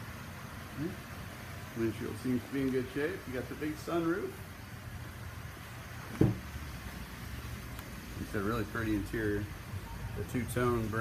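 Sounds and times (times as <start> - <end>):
steady low hum: 0.0 - 11.0
car door thump: 6.1 - 6.5.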